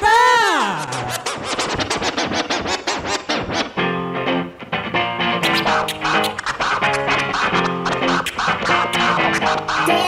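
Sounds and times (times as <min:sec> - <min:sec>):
dj scratching: 0:00.0 - 0:03.8, 0:05.3 - 0:10.0.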